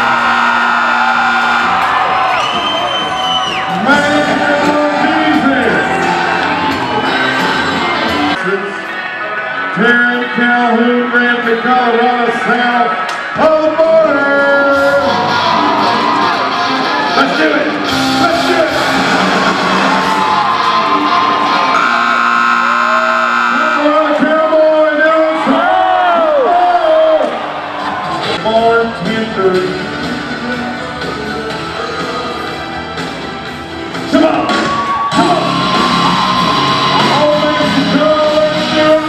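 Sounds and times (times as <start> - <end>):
loud music with singing: 0.0 - 39.0.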